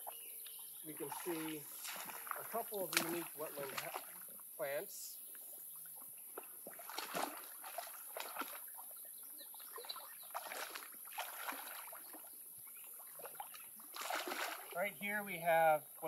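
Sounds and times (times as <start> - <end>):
person wading through water: 0.1 - 15.0.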